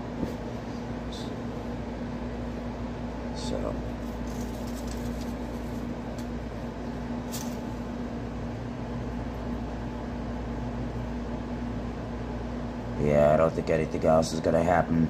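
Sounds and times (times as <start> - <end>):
constant low hum: 0.0 - 15.0.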